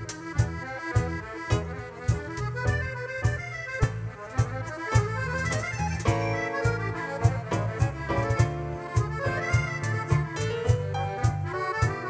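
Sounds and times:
accordion playing chords and melody: 0.0s - 12.0s
steady percussion beat: 0.0s - 12.0s.

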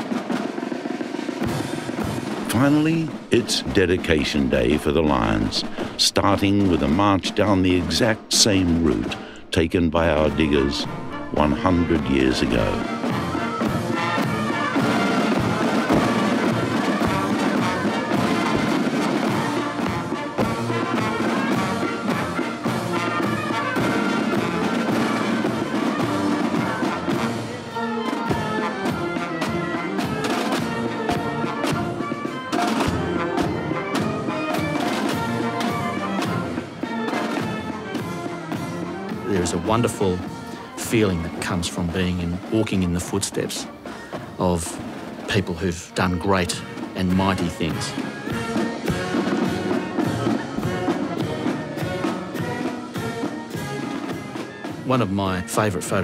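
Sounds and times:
drum strokes: 0.0s - 56.0s
marching band playing: 0.0s - 56.0s.

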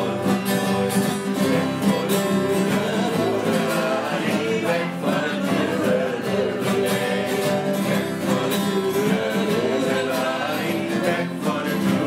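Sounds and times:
acoustic guitars playing: 0.0s - 12.0s
man singing: 0.0s - 12.0s.

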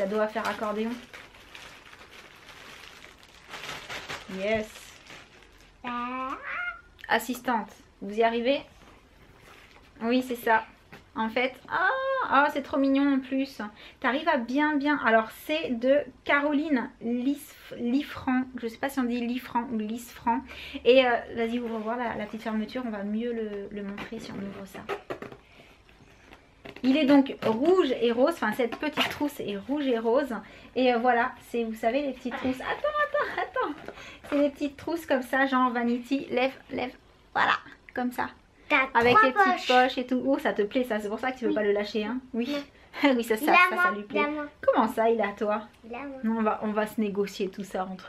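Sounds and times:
woman speaking: 0.0s - 1.1s, 4.3s - 5.0s, 7.0s - 8.7s, 10.0s - 25.0s, 26.8s - 48.0s
rustling and crackling of pouch: 0.0s - 5.9s.

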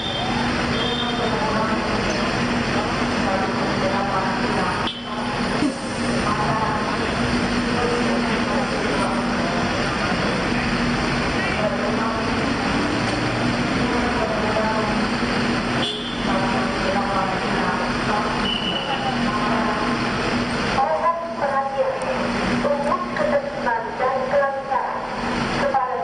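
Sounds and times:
crowd chattering: 0.0s - 26.0s
traffic noise: 0.0s - 26.0s.

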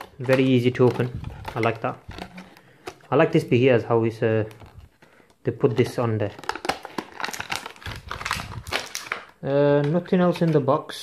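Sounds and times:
plastic packaging crackling: 0.0s - 11.0s.

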